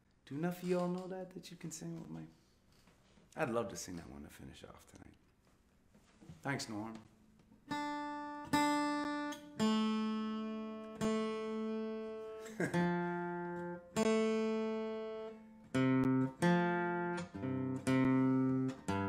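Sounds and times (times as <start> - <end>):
acoustic guitar chords ringing: 7.7 - 19.0.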